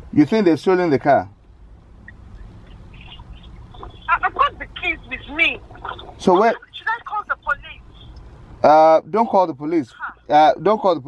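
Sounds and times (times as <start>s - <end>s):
car interior rumble: 0.0s - 11.0s.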